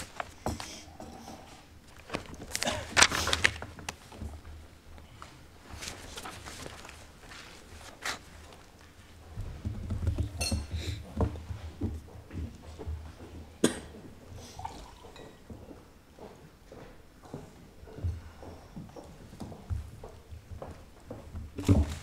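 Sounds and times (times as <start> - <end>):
footsteps on hard floor: 15.5 - 22.0.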